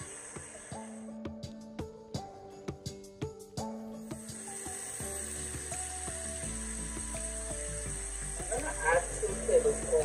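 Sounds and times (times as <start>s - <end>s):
stir fry sizzling in skillet: 4.2s - 9.9s.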